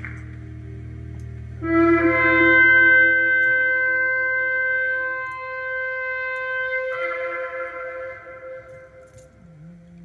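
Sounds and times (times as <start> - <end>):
low steady note: 0.0 - 10.0
held horn-like wind note: 1.6 - 9.7.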